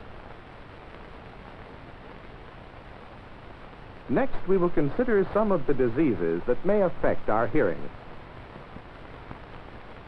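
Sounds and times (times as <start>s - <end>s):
film soundtrack hiss: 0.0s - 10.0s.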